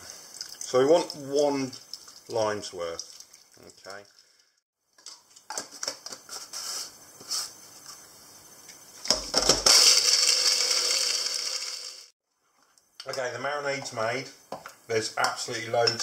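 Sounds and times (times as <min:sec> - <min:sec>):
blender running: 0:09.5 - 0:12.1.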